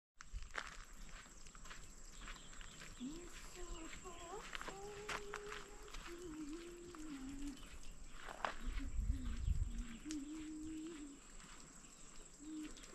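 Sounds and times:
footsteps crunching on gravel: 0.2s - 12.9s
wavering voice-like call: 8.6s - 11.2s.

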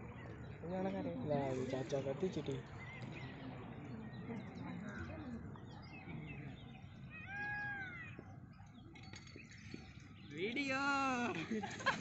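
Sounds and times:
faint bird chirping: 0.0s - 10.9s.

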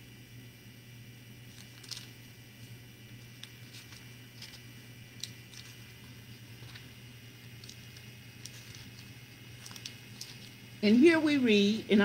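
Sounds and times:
steady low hum: 0.0s - 12.0s
small clicks and rustles: 1.5s - 10.6s.

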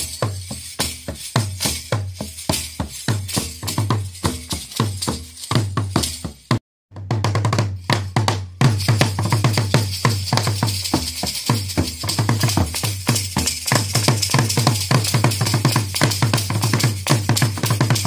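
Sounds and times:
jingling leg bells: 0.0s - 6.6s, 8.6s - 18.0s
drums beaten with sticks: 0.0s - 18.0s.

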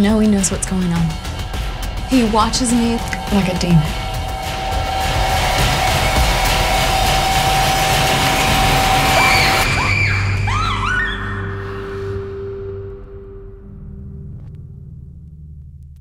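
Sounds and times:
low drone: 0.6s - 15.9s
dense swell of noise: 1.4s - 9.7s
swooping pitch glides: 1.9s - 11.7s
held tone: 2.0s - 9.6s.

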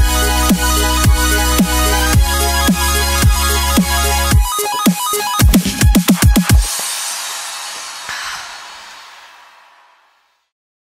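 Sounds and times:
hissy whoosh: 6.7s - 10.5s.

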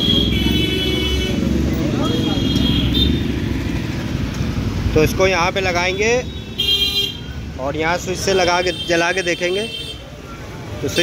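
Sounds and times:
vehicle engine rumble: 0.0s - 6.6s.

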